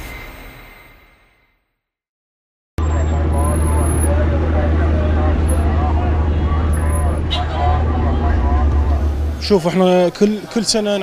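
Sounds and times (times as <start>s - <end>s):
passers-by talking: 2.8s - 11.0s
traffic rumble: 2.8s - 11.0s.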